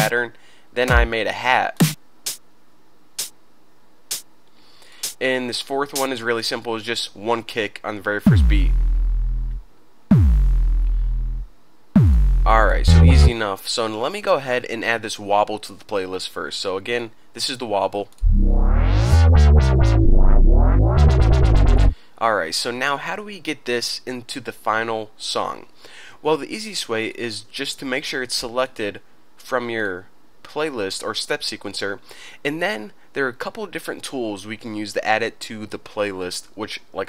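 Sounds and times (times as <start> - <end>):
crisp hi-hat hits: 0.8 - 1.2, 1.8 - 2.5, 3.1 - 3.4, 4.1 - 4.3, 5.0 - 5.2, 5.9 - 6.2, 8.3 - 13.4
synthesizer wobble bass: 8.3 - 13.3, 18.2 - 22.0.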